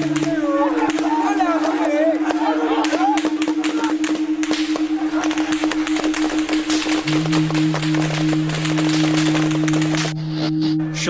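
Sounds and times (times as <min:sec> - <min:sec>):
sharp cracks and knocks: 0:00.0 - 0:10.1
low held note: 0:00.0 - 0:11.0
pulsing musical drone: 0:00.0 - 0:11.0.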